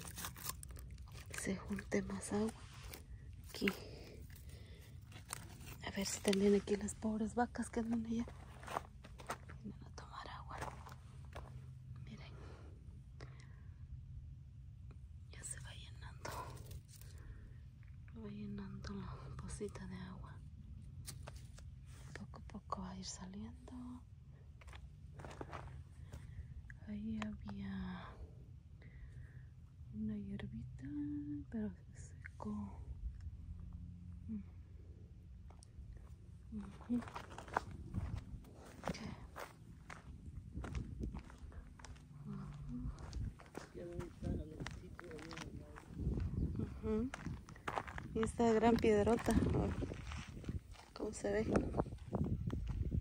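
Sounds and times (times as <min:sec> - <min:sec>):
low steady rumble: 0:00.0 - 0:53.0
footsteps on grass and asphalt: 0:07.6 - 0:09.6, 0:10.5 - 0:11.6, 0:36.6 - 0:51.2
whispered voice: 0:42.2 - 0:47.3.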